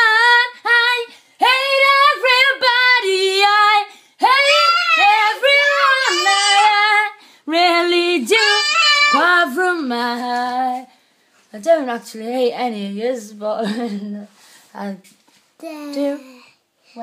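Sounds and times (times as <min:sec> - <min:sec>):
woman singing unaccompanied: 0:00.0 - 0:10.9, 0:11.5 - 0:15.1.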